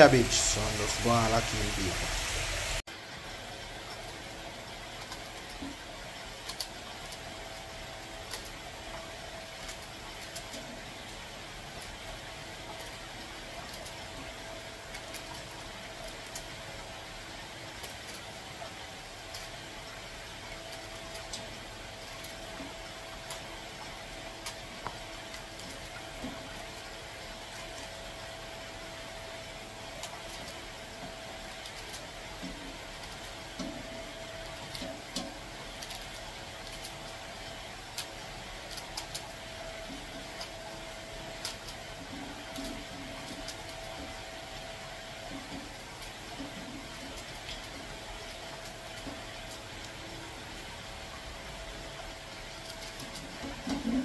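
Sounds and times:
steady background hum: 0:00.0 - 0:54.0.

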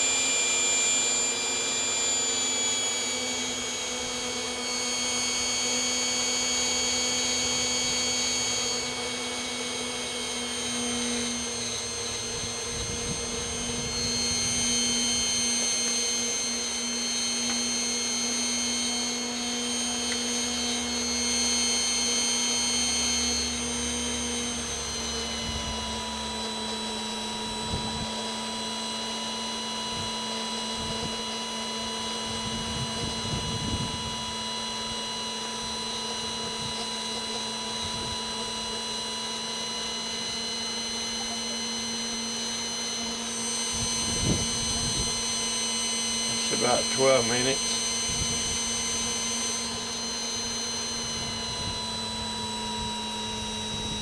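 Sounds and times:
hot-air blower motor whine: 0:00.0 - 0:54.0.

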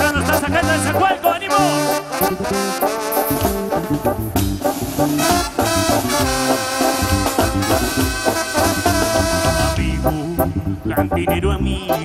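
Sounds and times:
trombones and clarinets melody: 0:00.0 - 0:11.1
bass line on steady beat: 0:03.3 - 0:12.0.

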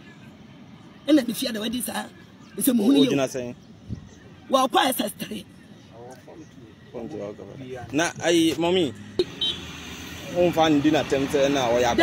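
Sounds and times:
road vehicle passing: 0:04.5 - 0:12.0.

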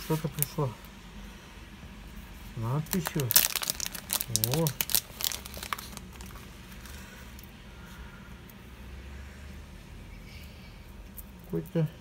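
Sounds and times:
low steady hum: 0:00.0 - 0:12.0
padded mailer crinkling: 0:02.8 - 0:06.9.

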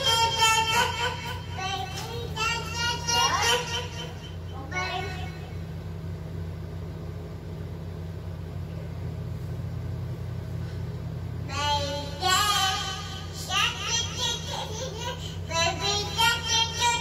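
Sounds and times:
toddler singing: 0:00.0 - 0:05.4, 0:11.5 - 0:17.0
steady low hum: 0:00.0 - 0:17.0.

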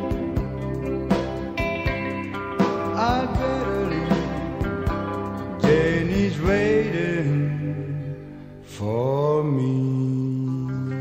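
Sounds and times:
pop song with sung note: 0:02.6 - 0:11.0.

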